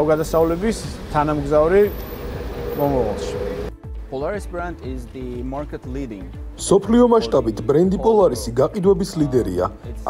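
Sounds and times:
man speaking: 0.3 - 2.0, 2.6 - 3.7, 6.8 - 9.8
steady low hum: 1.8 - 3.7.

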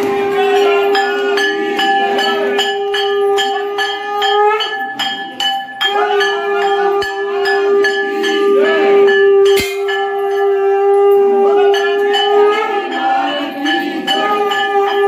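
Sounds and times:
metal bell struck rapidly: 0.0 - 10.7, 11.7 - 15.0
conch shell blown: 0.0 - 15.0.

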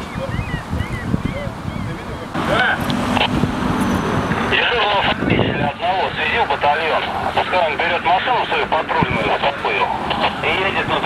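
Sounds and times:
indistinct voices talking: 0.0 - 11.0
street traffic: 0.0 - 11.0
passing vehicle hum: 1.5 - 11.0.

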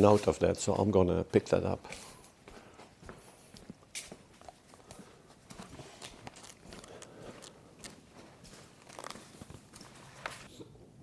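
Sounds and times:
faint footsteps walking: 0.0 - 10.5.

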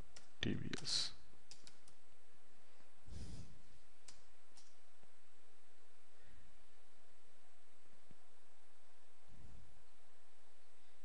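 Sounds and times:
computer keyboard key clicks: 1.5 - 2.0.

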